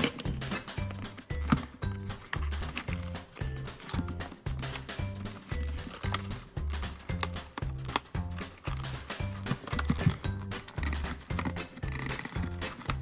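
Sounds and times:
background music with bass and percussion: 0:00.0 - 0:13.0.

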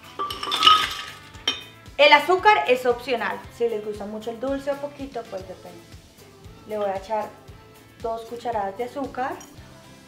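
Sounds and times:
ice cubes clattering in blender jar: 0:00.1 - 0:01.3.

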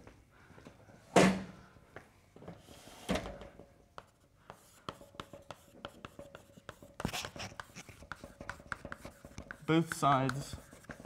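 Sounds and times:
chalk tapping and scraping: 0:03.9 - 0:11.0.

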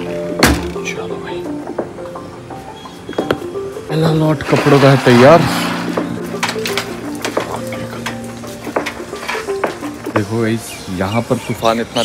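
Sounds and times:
music with held low notes: 0:00.0 - 0:12.0.

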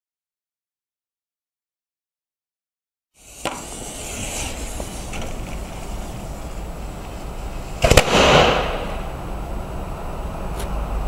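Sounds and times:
outdoor background: 0:03.1 - 0:11.0
firecracker bangs: 0:03.2 - 0:05.1, 0:07.8 - 0:09.2
firecracker fizzling hiss: 0:03.2 - 0:09.7.

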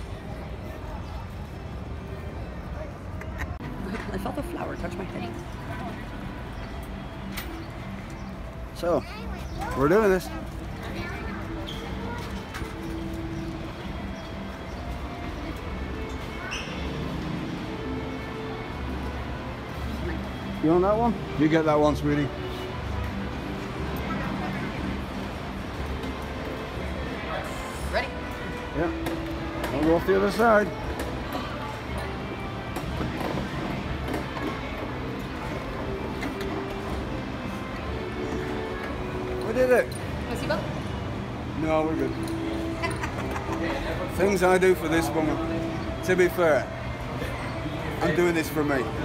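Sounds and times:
background hubbub: 0:00.0 - 0:49.0
carousel music: 0:00.0 - 0:49.0.

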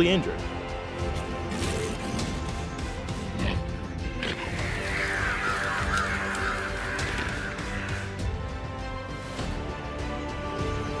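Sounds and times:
background music: 0:00.0 - 0:11.0
crows calling: 0:04.2 - 0:08.6.

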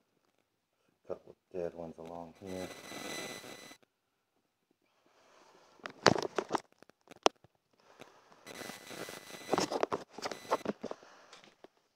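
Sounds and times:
phone handling noise: 0:08.5 - 0:10.9.

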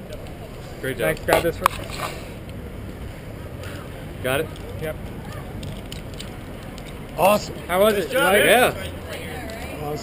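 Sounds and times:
city street background noise: 0:00.0 - 0:10.0.

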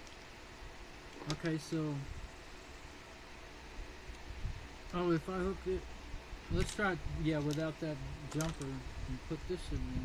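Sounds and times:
faint hiss: 0:00.0 - 0:10.0
low hum: 0:00.0 - 0:10.0.

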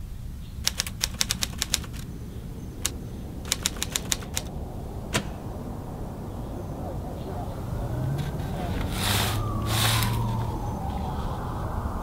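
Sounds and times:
steady low rumble: 0:00.0 - 0:12.0
typewriter keys clacking: 0:00.6 - 0:02.1, 0:02.8 - 0:04.5.

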